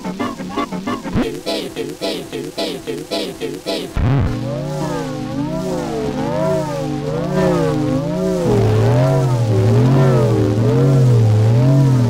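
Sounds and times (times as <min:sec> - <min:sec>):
low buzzing warbling drone: 0:00.0 - 0:12.0.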